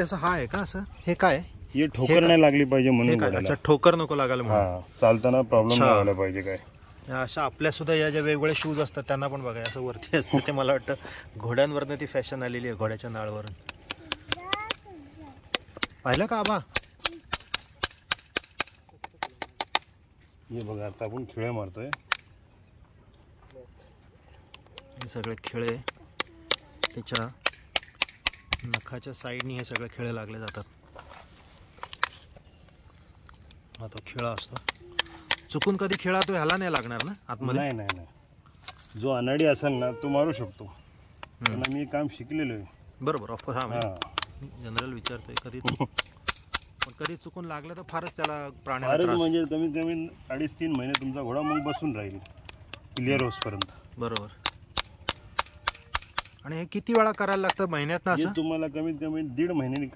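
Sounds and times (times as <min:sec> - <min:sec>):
hammer striking horseshoe nails: 0:15.8 - 0:19.8, 0:25.8 - 0:28.8
hammer tapping: 0:33.7 - 0:37.2.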